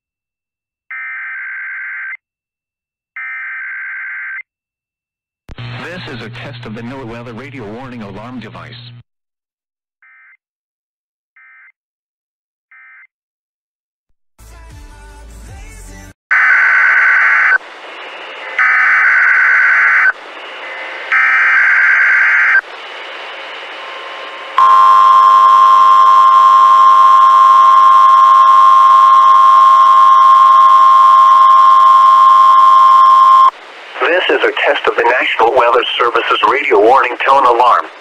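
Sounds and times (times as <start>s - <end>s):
steady loud alarm tone: 18.3s - 22.6s, 24.6s - 33.5s
harsh data bursts: 24.6s - 37.9s.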